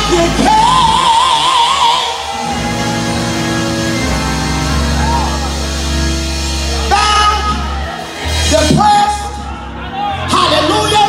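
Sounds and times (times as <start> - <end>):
woman singing with vibrato: 0.0 - 3.0
sustained chords and bass: 0.0 - 11.0.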